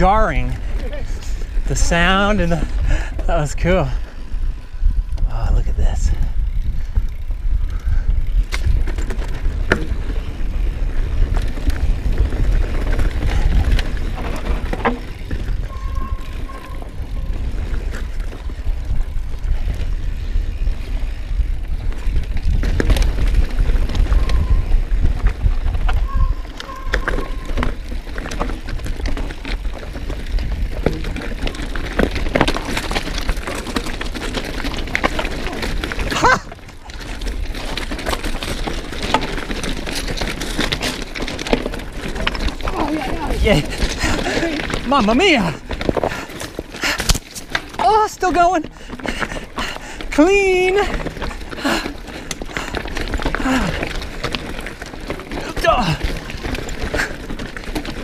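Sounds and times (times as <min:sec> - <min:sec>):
bike rattling and knocking: 0:00.0 - 0:58.0
tyres rumbling over dirt: 0:00.0 - 0:58.0
high squeaks: 0:15.6 - 0:17.3, 0:26.0 - 0:27.8.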